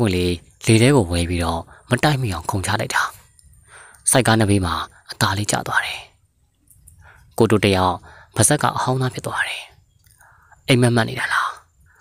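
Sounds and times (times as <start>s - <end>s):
man narrating: 0.0s - 3.2s, 4.0s - 6.1s, 7.3s - 9.7s, 10.6s - 11.6s
faint clicks: 9.9s - 10.6s.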